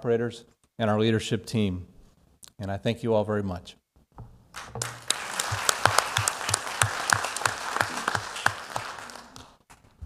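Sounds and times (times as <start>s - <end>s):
audience applauding: 4.6s - 9.6s.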